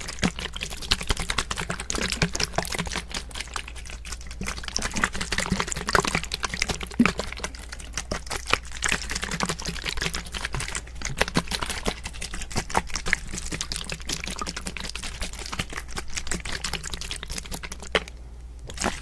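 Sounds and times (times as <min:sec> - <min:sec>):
liquid sloshing in bottle: 0:00.0 - 0:19.0.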